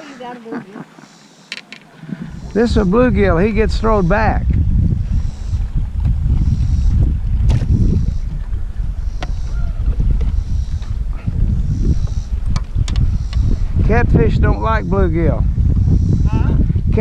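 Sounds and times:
wind rumble on microphone: 1.9 - 17.0.

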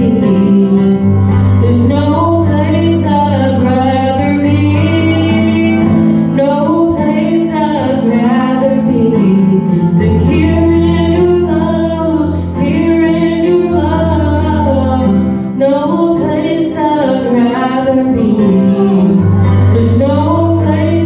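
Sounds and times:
keyboard chords and bass notes: 0.0 - 21.0
woman singing into a microphone: 0.0 - 21.0.

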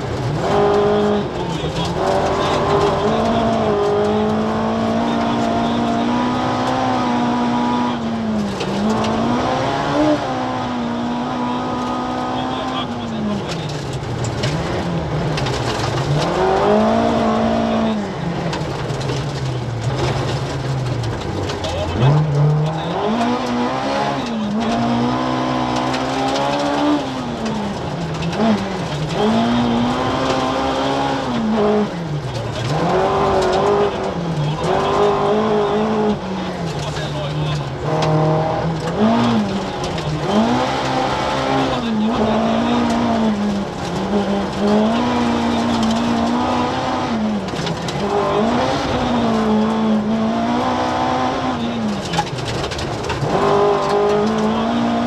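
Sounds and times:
gravel and road noise: 0.0 - 55.0
rally car engine revving: 0.0 - 55.0.

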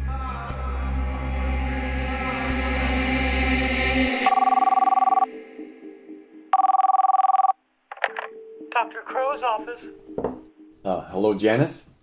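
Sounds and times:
electronic telephone ring: 4.2 - 5.3, 6.6 - 8.3.

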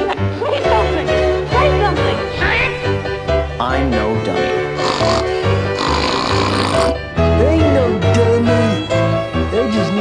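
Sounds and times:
string quartet: 0.0 - 5.6, 7.2 - 10.0
piano: 0.0 - 10.0
harsh rasping noise: 4.4 - 7.0.

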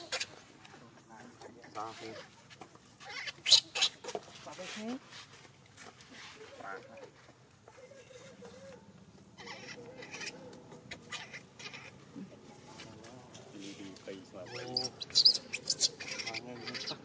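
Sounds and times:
baby monkey crying: 0.0 - 0.3, 3.0 - 4.0, 9.4 - 12.0, 14.4 - 17.0.

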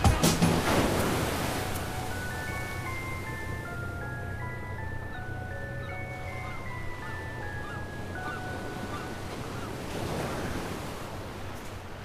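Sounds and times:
surf washing onto beach: 0.0 - 3.4
high chiming music: 1.3 - 9.9.

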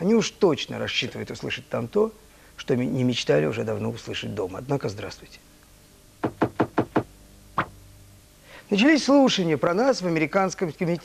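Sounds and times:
sharp knocks: 6.2 - 7.8.

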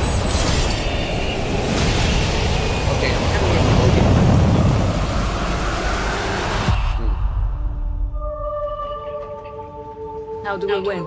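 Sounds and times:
explosion and fire effect: 0.0 - 7.7.

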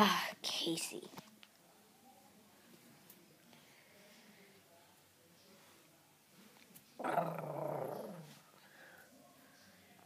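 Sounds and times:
person growling: 7.0 - 8.3.

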